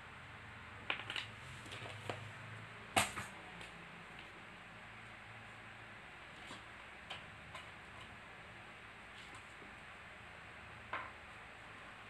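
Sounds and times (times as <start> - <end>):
low room hiss: 0.0 - 12.0.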